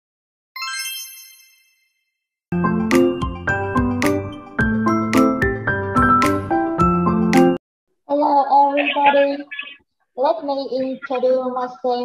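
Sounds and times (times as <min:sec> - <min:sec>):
high bright chime: 0:00.6 - 0:02.2.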